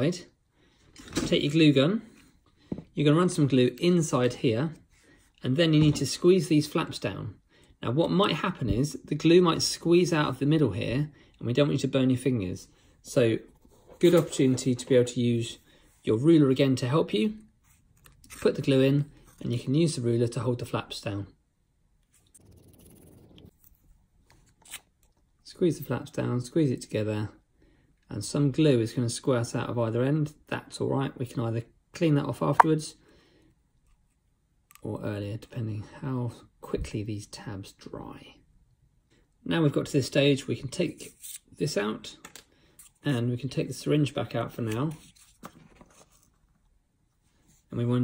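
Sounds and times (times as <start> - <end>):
cardboard rustling: 44.9 - 46.6.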